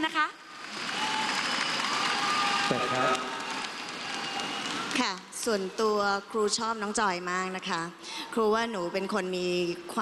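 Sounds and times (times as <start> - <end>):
audience applauding and cheering: 0.4 - 5.8
crowd shouts: 0.7 - 5.1.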